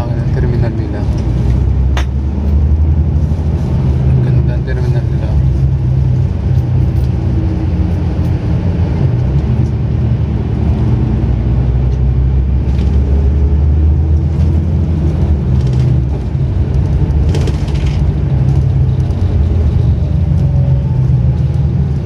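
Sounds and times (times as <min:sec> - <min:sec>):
vehicle engine and road noise: 0:00.0 - 0:22.0.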